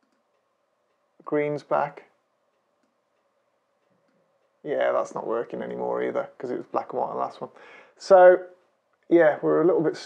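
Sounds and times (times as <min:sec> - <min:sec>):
faint tick: 0:00.0 - 0:01.3, 0:02.0 - 0:04.6
faint steady hum: 0:00.0 - 0:10.0.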